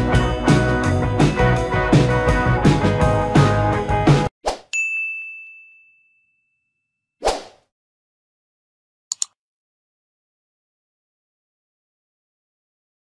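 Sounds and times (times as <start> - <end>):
background guitar music: 0.0 - 4.3
bright ding: 4.8 - 6.9.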